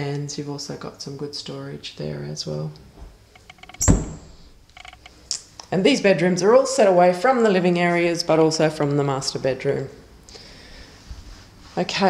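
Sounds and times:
faint knocks and clicks: 3.0s - 5.1s
dull thunk: 3.8s - 4.2s.

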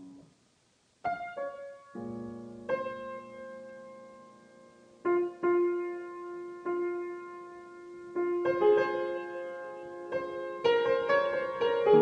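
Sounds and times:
solo grand piano: 0.0s - 12.0s.

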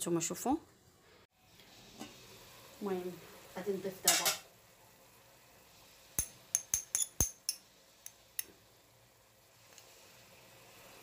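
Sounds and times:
metal spoon clinking on container: 6.2s - 7.6s.

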